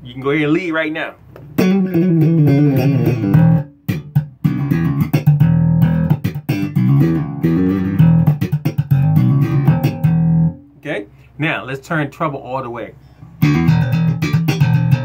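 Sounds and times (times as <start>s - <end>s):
plucked electric bass notes: 1.5s - 10.8s, 13.4s - 15.0s.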